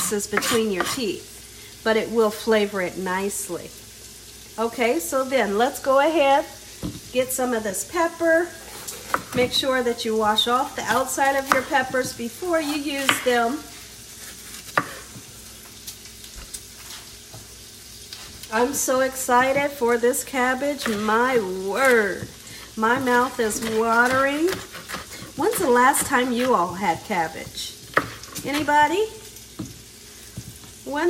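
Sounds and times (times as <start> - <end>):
bacon sizzling in a pan: 0.0 - 31.0.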